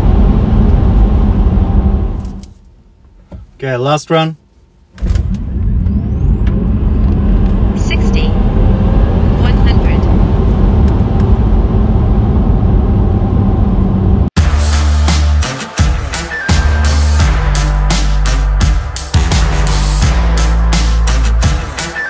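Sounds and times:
road and tyre rumble: 0:00.0 - 0:03.7, 0:04.4 - 0:14.4
music: 0:14.4 - 0:22.0.

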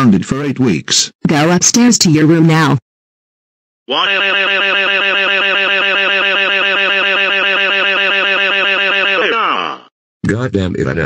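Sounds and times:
synthesized cartoon voice crying: 0:03.9 - 0:09.9.

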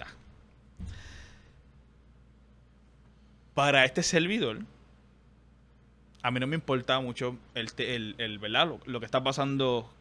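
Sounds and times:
faint low hum: 0:00.0 - 0:10.0
man breathing close to microphone: 0:00.8 - 0:01.7.

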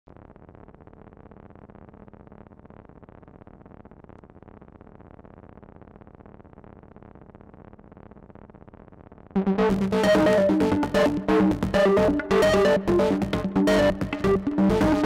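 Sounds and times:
low steady synthesizer note: 0:09.4 - 0:15.0.

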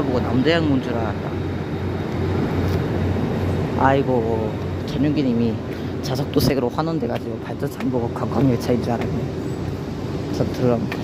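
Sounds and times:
diesel generator droning: 0:00.0 - 0:11.0.

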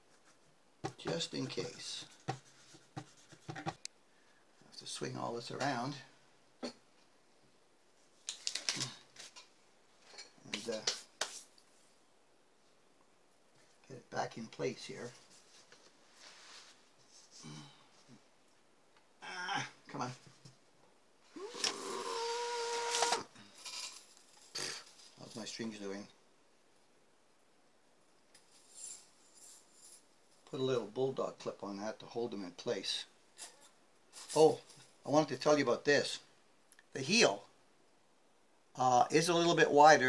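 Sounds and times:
rustling handling noises: 0:08.0 - 0:12.0, 0:14.6 - 0:18.3.

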